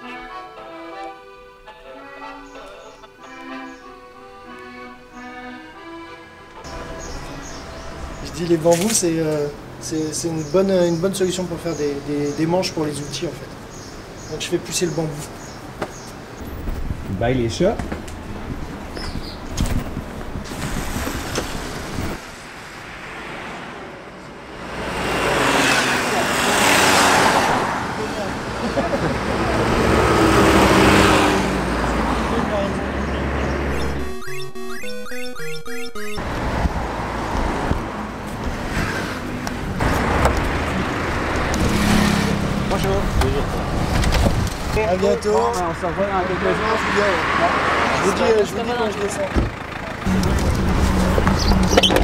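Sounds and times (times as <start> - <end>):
cars passing: 1.6 - 52.0.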